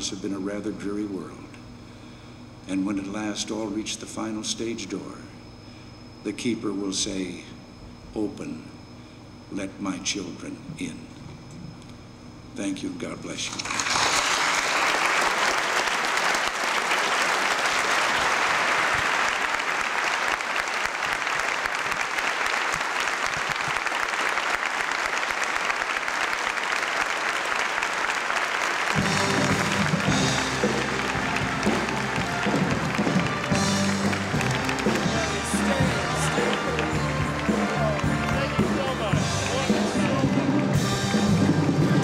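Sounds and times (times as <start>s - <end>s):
audience applauding: 13.5s - 42.0s
music with low bass line: 29.0s - 42.0s.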